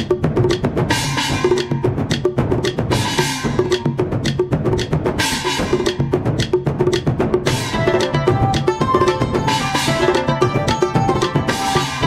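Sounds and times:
rapid drumming: 0.0 - 12.0
wood block clacks: 0.0 - 12.0.

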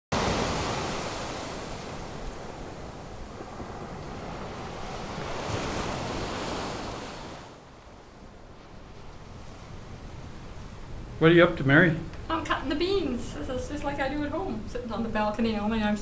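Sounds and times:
ocean surf on a beach: 0.1 - 11.2.

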